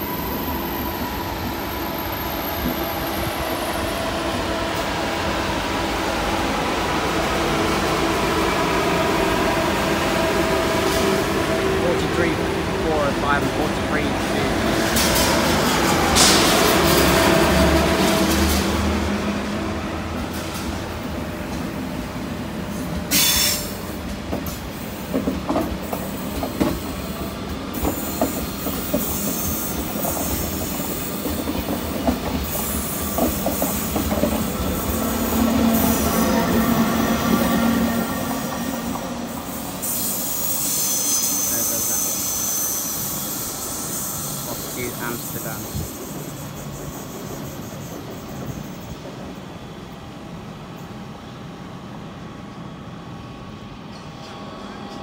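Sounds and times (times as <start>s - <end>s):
train wheels squealing on rails: 0.0s - 6.7s, 22.7s - 51.1s, 52.5s - 55.0s
train wheels clicking over track: 14.2s - 19.1s, 22.8s - 49.4s
sharp screech: 34.8s - 48.8s.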